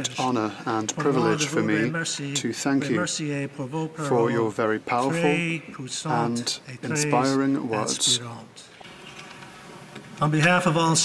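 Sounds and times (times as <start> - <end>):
man speaking: 0.0 - 8.7.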